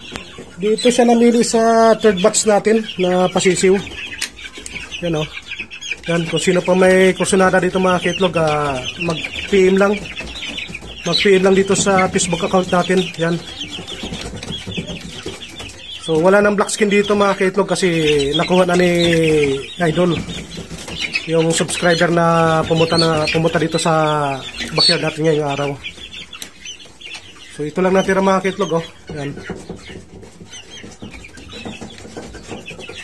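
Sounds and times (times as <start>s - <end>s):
chicks peeping: 0.0s - 33.0s.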